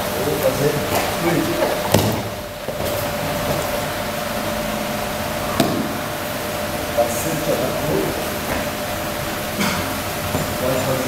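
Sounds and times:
room noise hiss: 0.0s - 11.0s
body thumping on a mat: 1.0s - 3.9s.

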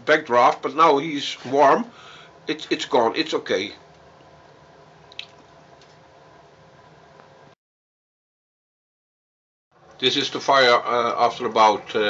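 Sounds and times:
wood fire hissing: 0.4s - 3.8s.

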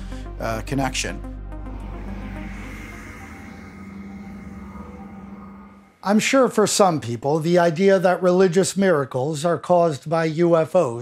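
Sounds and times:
steady low hum: 0.0s - 6.2s
synthesizer drone: 0.0s - 6.3s.

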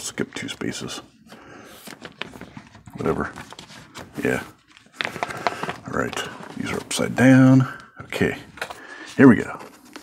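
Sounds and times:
plastic page rustling: 1.6s - 10.0s
card scraping against plastic: 1.7s - 10.0s.

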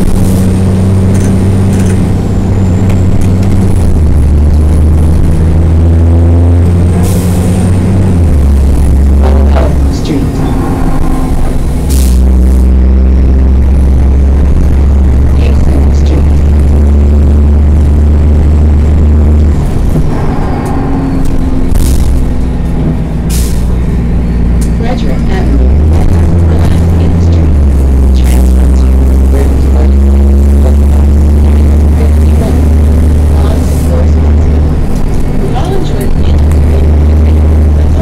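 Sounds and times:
rattles: 0.0s - 5.9s
bus diesel engine drone: 0.0s - 38.0s.

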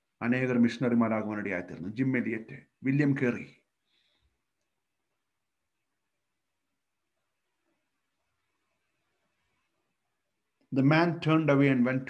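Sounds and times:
man speaking: 0.2s - 3.7s, 10.7s - 12.0s.

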